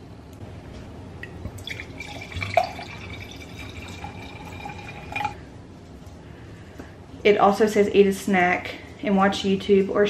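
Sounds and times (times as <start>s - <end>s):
wine pouring into a glass: 1.5s - 5.4s.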